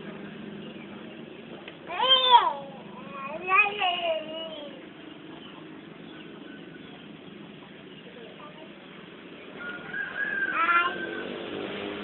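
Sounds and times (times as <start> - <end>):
child calling out: 1.9 - 4.8.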